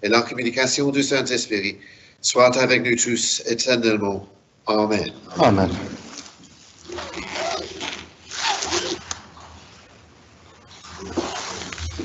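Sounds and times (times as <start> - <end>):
person speaking: 4.9 - 6.0.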